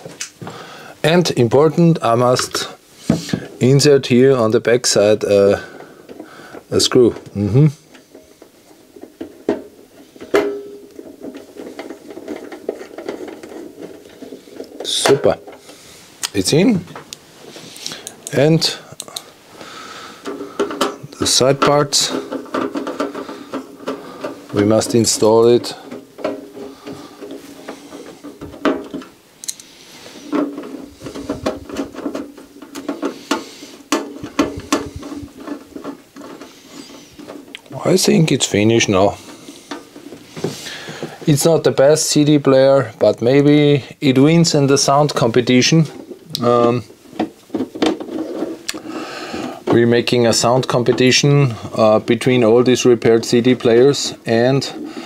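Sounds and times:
plastic and metal parts clicking: 20.2s - 41.5s.

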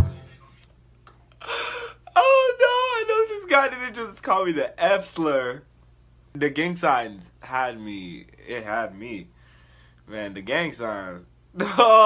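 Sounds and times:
breathy gasp: 1.4s - 2.1s
man laughing high-pitched: 11.6s - 12.0s.

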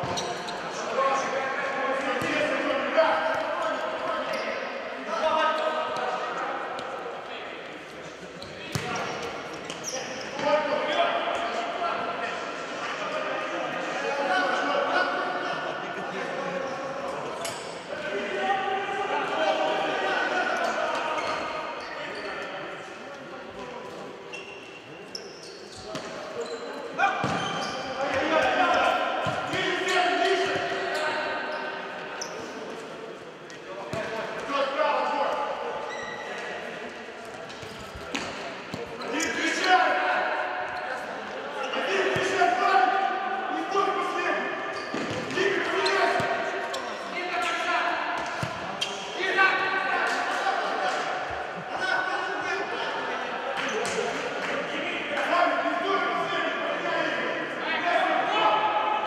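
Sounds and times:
voices calling out in a hall: 0.0s - 59.0s.

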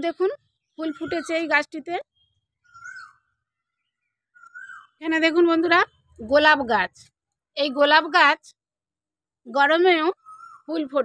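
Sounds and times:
bird calling: 2.2s - 3.3s, 4.3s - 5.0s, 10.2s - 10.7s.

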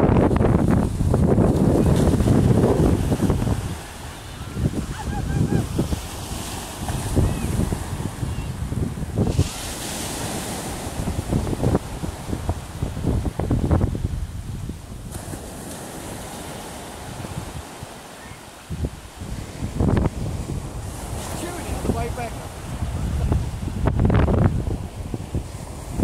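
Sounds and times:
sea surf breaking on beach: 0.0s - 26.0s
wind rumbling on microphone: 0.0s - 26.0s.

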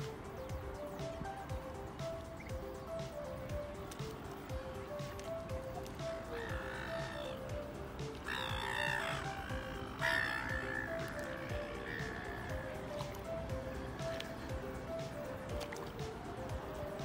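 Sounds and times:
gently repeating background music: 0.0s - 17.0s
swans calling: 0.0s - 17.0s.

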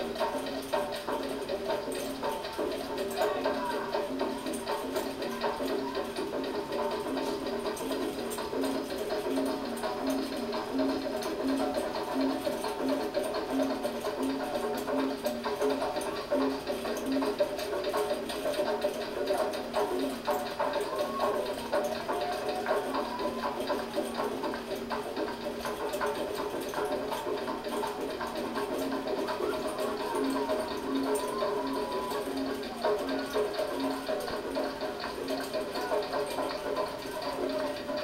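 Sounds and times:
latin band with guitars: 0.0s - 38.0s.

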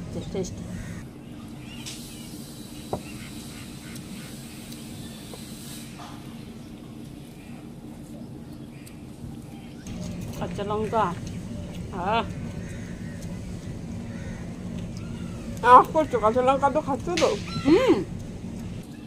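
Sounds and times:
low background hum: 0.0s - 19.0s
mouths chewing: 9.8s - 18.8s.

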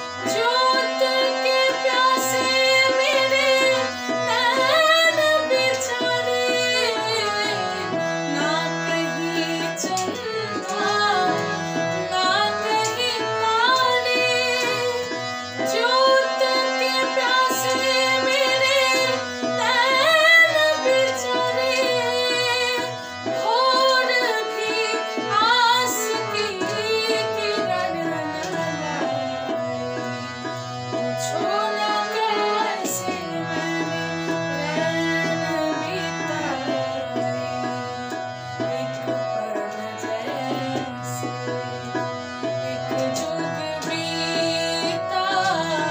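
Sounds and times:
woman singing: 0.0s - 41.6s, 42.5s - 45.9s
tabla rhythm: 0.0s - 45.9s.

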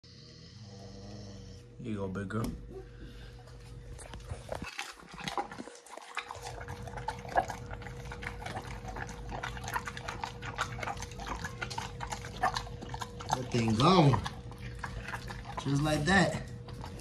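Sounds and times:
dog chewing and smacking: 3.8s - 17.0s.

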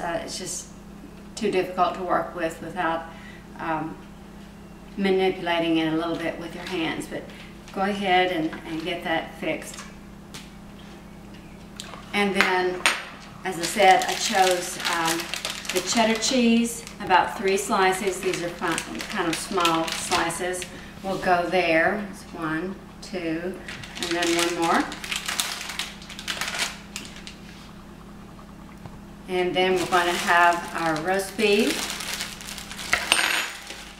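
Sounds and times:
steady low hum: 0.0s - 33.9s
plastic packaging crinkling: 13.5s - 20.8s, 23.6s - 27.5s, 29.6s - 33.9s.

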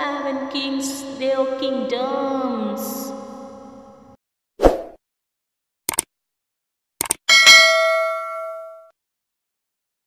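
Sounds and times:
bell notification chime: 7.3s - 8.9s.

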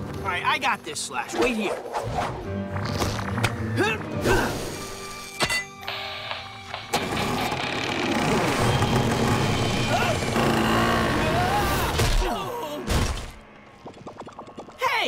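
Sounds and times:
dramatic music: 1.4s - 14.8s.

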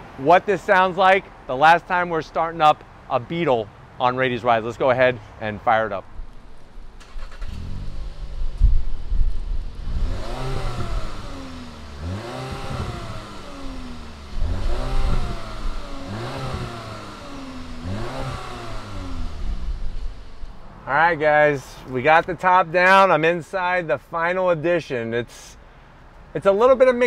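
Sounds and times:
car engine starting and revving: 6.9s - 20.9s.

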